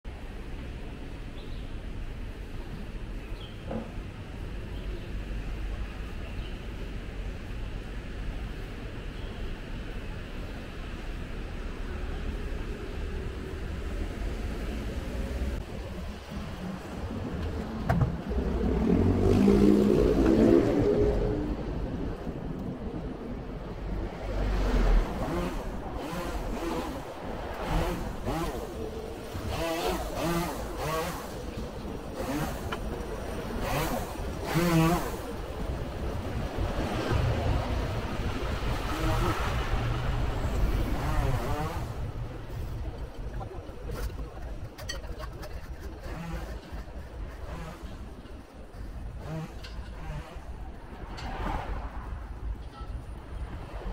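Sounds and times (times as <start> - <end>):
cars and motorcycles passing: 10.0 - 53.9.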